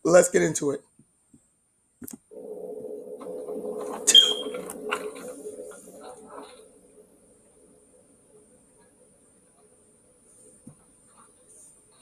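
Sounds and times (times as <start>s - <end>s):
low steady hum: 2.2s - 12.0s.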